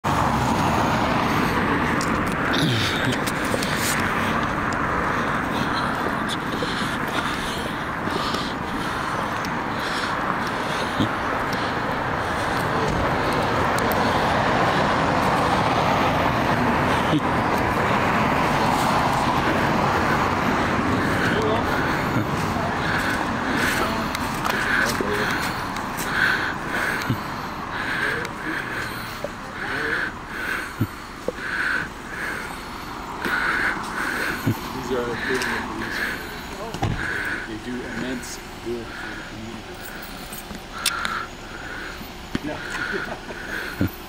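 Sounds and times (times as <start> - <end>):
car driving past: 0.0 - 44.0.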